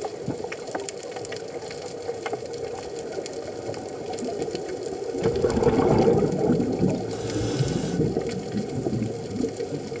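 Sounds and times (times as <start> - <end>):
steady underwater noise: 0.0 - 10.0
diver's exhaled bubbles: 5.2 - 9.5.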